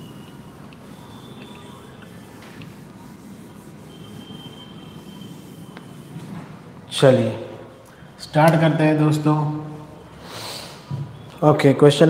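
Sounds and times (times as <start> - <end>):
eraser squealing on whiteboard: 0.0 - 6.4.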